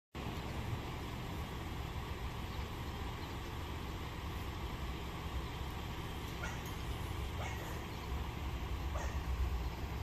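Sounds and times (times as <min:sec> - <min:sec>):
outdoor street noise: 0:00.2 - 0:10.0.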